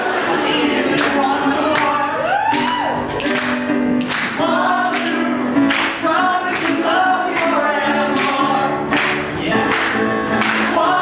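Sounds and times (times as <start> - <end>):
ensemble singing in chorus: 0.0 - 2.5, 4.2 - 11.0.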